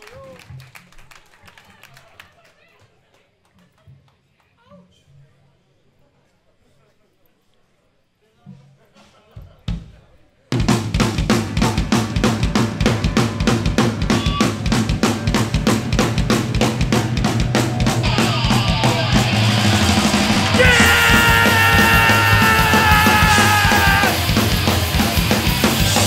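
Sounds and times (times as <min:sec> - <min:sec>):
fast driving drum beat: 0:10.6 - 0:26.0
live punk band playing: 0:10.6 - 0:26.0.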